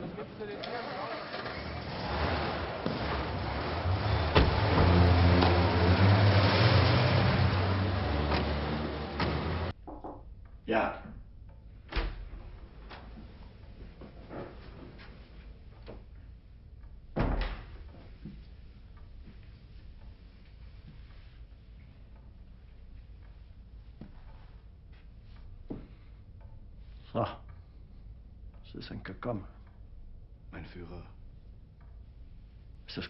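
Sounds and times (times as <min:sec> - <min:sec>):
car engine rumbling: 0:01.2 - 0:09.8.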